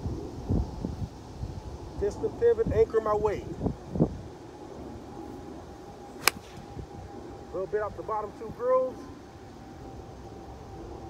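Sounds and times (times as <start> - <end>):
wind buffeting microphone: 0.0 - 7.5.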